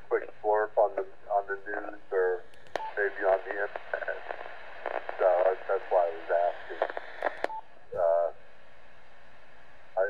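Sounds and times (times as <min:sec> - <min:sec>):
voice through radio speaker: 0:00.1 - 0:07.0, 0:08.0 - 0:08.4.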